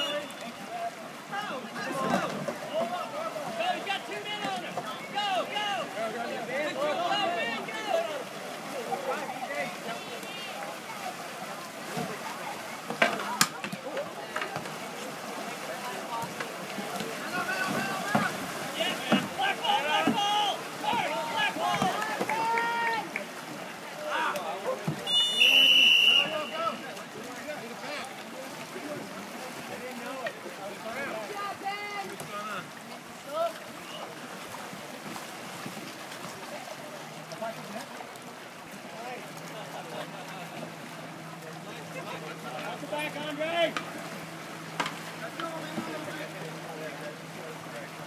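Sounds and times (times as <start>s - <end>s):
voices calling out: 0.0s - 34.9s
referee's whistle blast: 25.0s - 26.8s.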